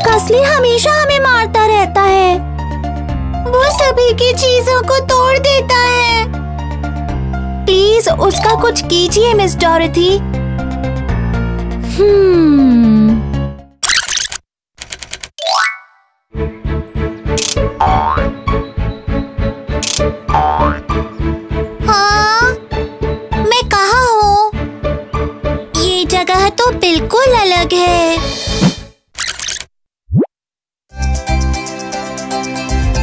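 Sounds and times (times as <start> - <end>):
keyboard typing clicks: 14.1 - 15.4.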